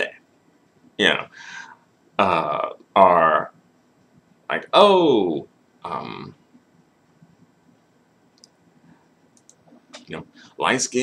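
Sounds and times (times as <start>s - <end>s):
faint short clicks: 9.4s - 10.1s.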